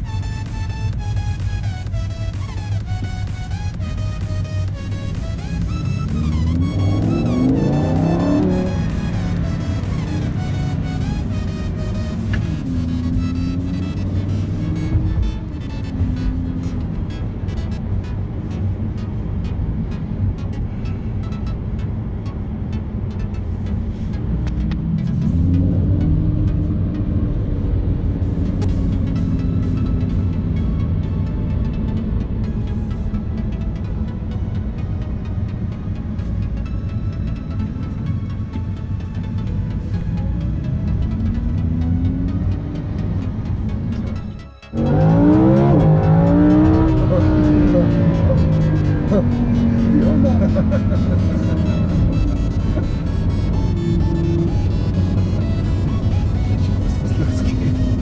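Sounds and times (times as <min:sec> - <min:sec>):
background music with steady beat: 0:00.0 - 0:58.0
car engine accelerating: 0:00.0 - 0:58.0.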